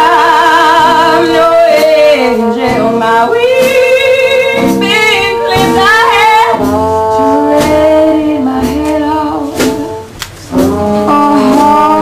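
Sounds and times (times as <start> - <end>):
drums: 0.0 - 12.0
guitar: 0.0 - 12.0
trombone: 0.0 - 12.0
trumpet: 0.0 - 12.0
woman singing: 0.0 - 12.0.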